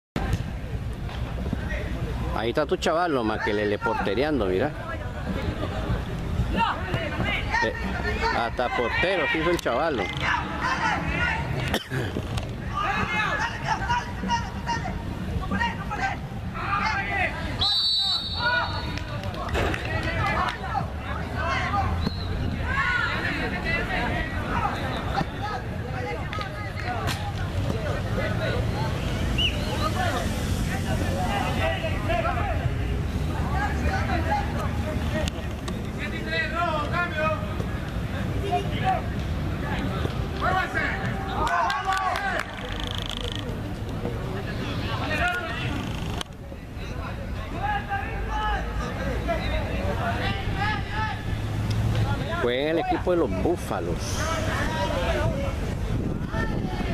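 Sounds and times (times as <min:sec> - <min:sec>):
voices calling across a field: 0:03.2 - 0:56.9
referee's whistle blast: 0:17.6 - 0:19.0.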